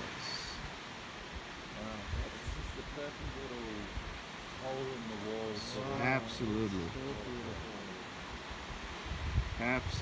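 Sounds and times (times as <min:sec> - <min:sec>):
distant waterfall rushing: 0:00.0 - 0:10.0
wind buffeting microphone: 0:08.3 - 0:10.0.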